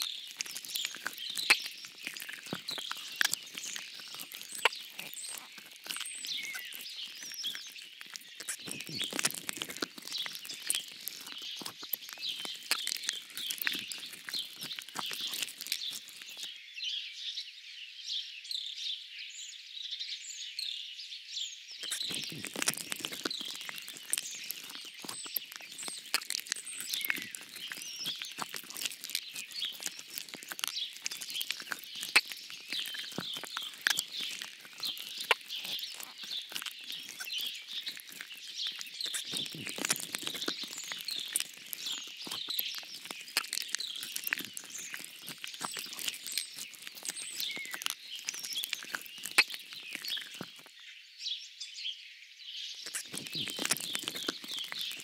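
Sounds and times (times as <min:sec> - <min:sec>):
songbirds chirping and singing: 0:00.0 - 0:55.0.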